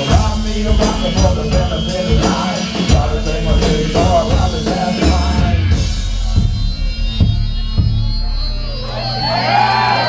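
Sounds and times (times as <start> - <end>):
audience cheering and whooping: 8.0 - 10.0.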